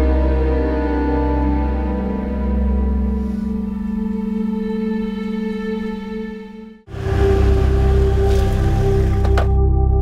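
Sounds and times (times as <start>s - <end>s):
dramatic drone score: 0.0s - 10.0s.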